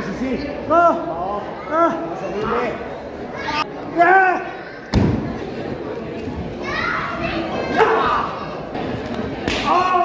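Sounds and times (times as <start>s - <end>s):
thud: 4.9s - 5.4s
children shouting and cheering: 6.6s - 8.6s.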